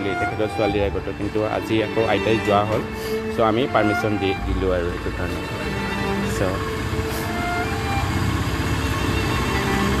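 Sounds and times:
music: 0.0s - 10.0s
small engine passing by: 0.0s - 10.0s.

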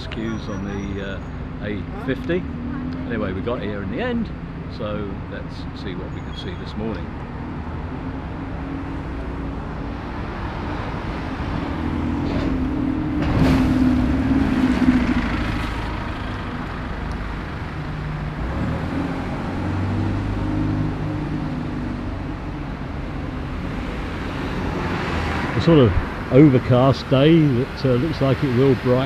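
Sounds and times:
buses and cars passing: 0.0s - 29.0s.

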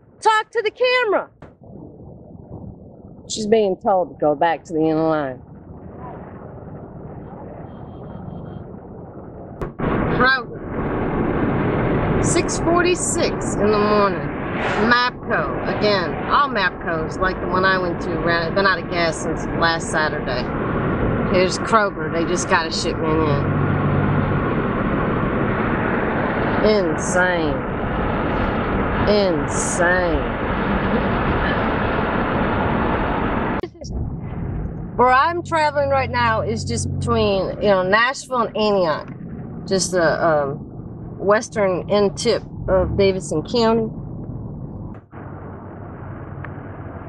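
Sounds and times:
low engine hum: 1.4s - 47.0s
road noise inside car: 4.4s - 47.0s.

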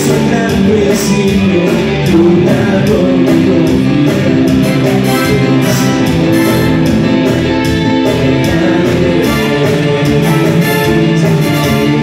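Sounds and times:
guitars leading: 0.0s - 12.0s
live band playing instrumental: 0.0s - 12.0s.

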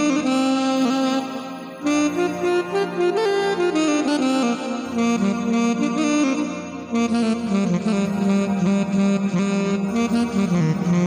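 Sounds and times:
electronic keyboard melody: 0.0s - 11.0s
sustained backing chords: 0.0s - 11.0s.

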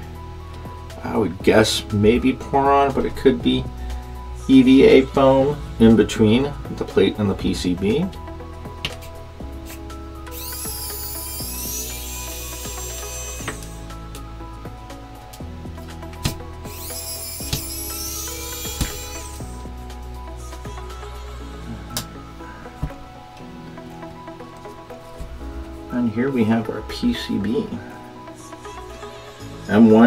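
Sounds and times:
electric screwdriver whining: 10.3s - 14.0s, 16.2s - 19.8s, 20.4s - 22.1s.

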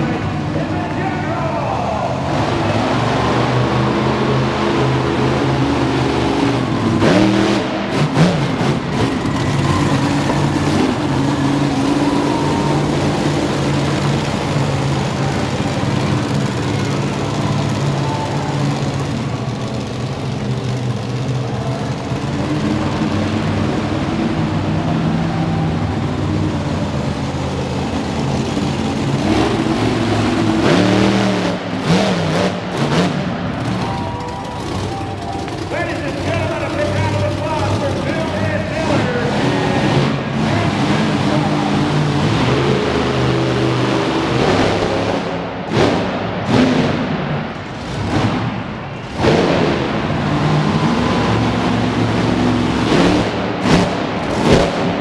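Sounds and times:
monster truck engine revving: 0.0s - 55.0s.

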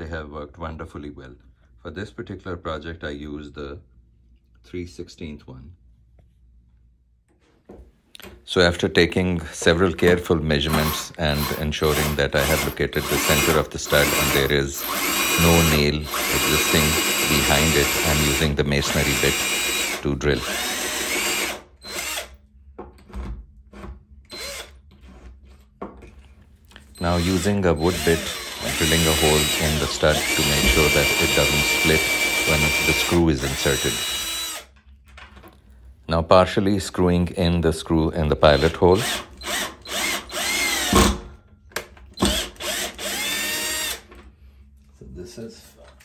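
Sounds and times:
cordless drill drilling into tile: 10.6s - 22.4s, 24.3s - 24.8s, 27.0s - 34.7s, 38.5s - 41.1s, 42.2s - 44.1s.

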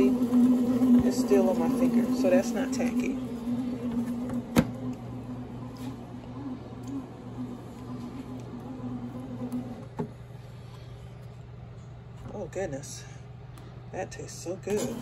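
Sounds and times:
bread machine motor hum: 0.0s - 15.0s.

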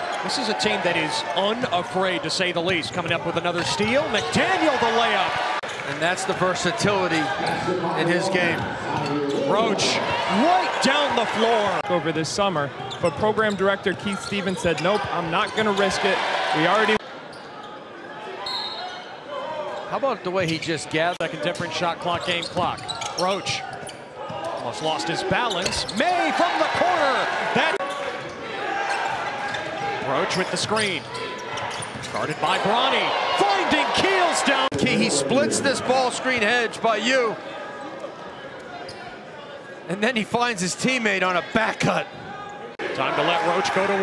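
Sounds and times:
murmur of gym crowd: 0.0s - 44.0s
shoe squeak: 12.8s - 16.0s, 22.2s - 24.7s, 25.4s - 26.0s, 30.4s - 32.5s
commentator speaking: 32.2s - 37.4s
crowd murmur: 33.0s - 38.6s.

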